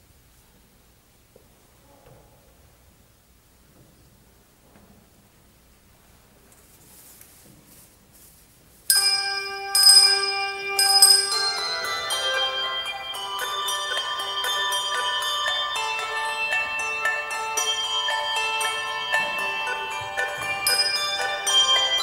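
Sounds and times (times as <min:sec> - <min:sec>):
handbells ringing: 0:08.9 - 0:22.0.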